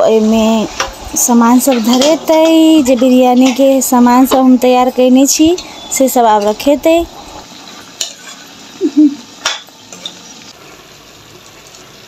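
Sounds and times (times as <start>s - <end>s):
frying sizzle: 0.0s - 12.0s
metal spatula scraping pan: 1.6s - 4.0s
spatula tapping pan: 1.6s - 4.5s.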